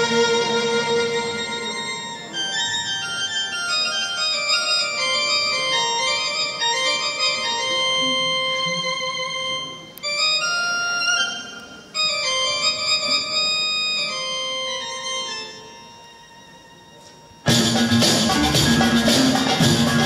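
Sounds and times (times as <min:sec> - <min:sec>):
orchestra playing held melody: 0:00.0 - 0:20.0.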